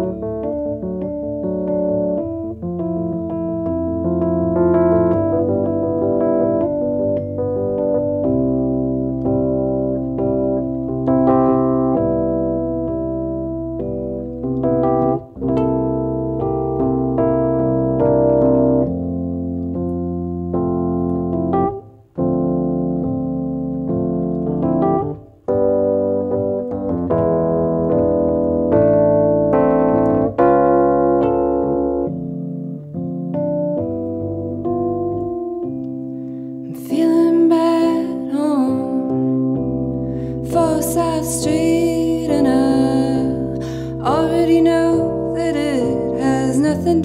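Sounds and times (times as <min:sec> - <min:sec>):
electric piano chords: 0:00.0 - 0:47.0.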